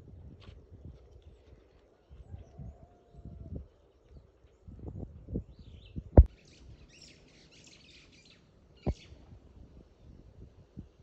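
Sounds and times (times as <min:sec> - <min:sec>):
outdoor ambience: 0:00.0 - 0:11.0.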